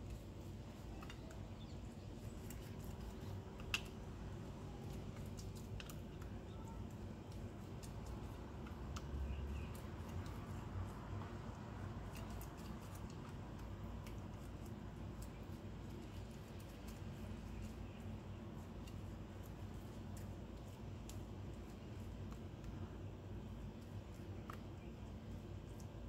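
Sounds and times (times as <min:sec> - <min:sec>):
steady low hum: 0:00.0 - 0:26.0
wet dabbing of pastry brush: 0:00.0 - 0:26.0.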